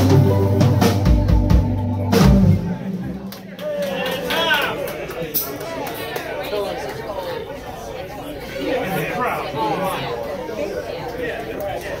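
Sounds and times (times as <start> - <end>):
chatter of people talking: 1.6 - 12.0.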